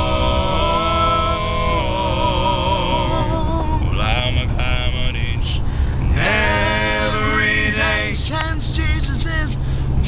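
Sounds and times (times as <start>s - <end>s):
male quartet singing: 0.0s - 9.3s
steady low rumble: 0.0s - 10.0s.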